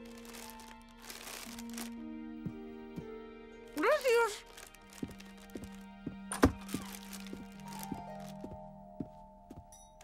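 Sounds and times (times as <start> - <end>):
plastic snack bags crinkling: 0.0 - 2.0, 4.4 - 5.8, 6.6 - 8.4
soft music with held notes: 0.0 - 10.0.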